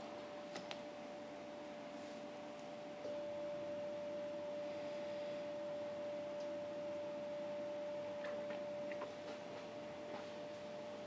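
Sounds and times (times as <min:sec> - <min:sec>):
equipment hum: 0:00.0 - 0:11.0.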